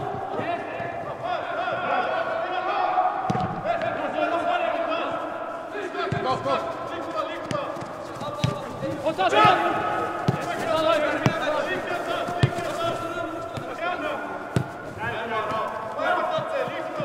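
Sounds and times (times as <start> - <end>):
footballers shouting: 0.0 - 17.0
ball being kicked: 3.3 - 3.6, 12.2 - 13.8, 14.5 - 14.8.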